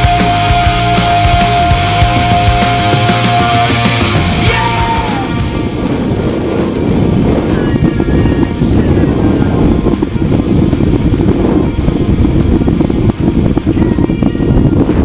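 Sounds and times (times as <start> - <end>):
music: 0.0 - 15.0
wind rushing over microphone: 0.0 - 15.0.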